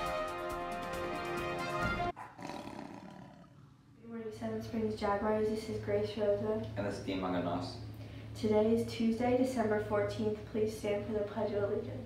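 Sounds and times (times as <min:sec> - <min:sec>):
theme music: 0:00.0 - 0:02.1
big cat roar: 0:02.4 - 0:03.8.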